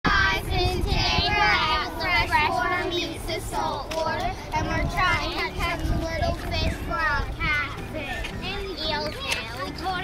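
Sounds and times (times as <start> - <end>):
children singing in unison: 0.1 - 7.3.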